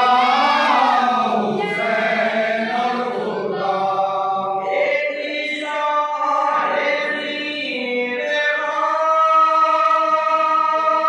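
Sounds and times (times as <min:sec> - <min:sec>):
men chanting a lament in unison: 0:00.0 - 0:11.0
reciter at a microphone: 0:00.0 - 0:11.0.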